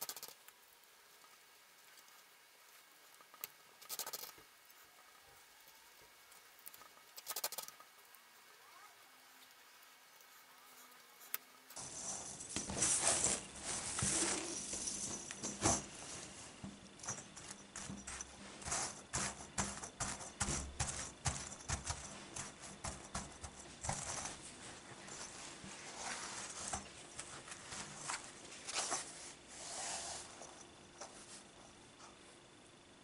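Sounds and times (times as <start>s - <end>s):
chain mail rings clinking: 11.8s - 29.0s.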